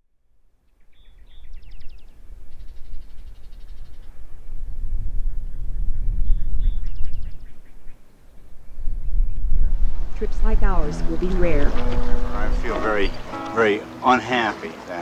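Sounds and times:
small bird singing trills: 0.8s - 9.8s
low rumble: 8.6s - 13.5s.

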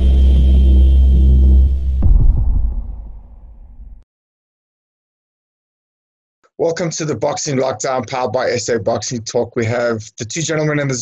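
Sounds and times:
deep bass rumble: 0.0s - 4.0s.

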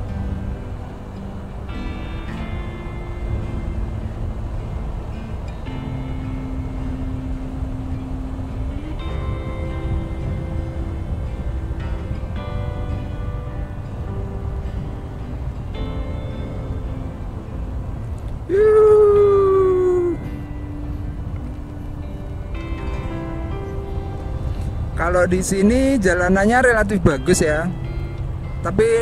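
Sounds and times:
strong downward sliding tone: 0.0s - 25.7s
background music of held notes: 0.0s - 29.0s
low rumble of ride: 0.0s - 29.0s.

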